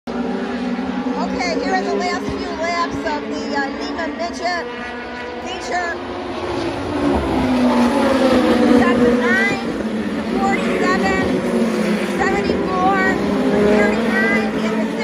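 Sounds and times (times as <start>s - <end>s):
race car engines racing: 0.1s - 15.0s.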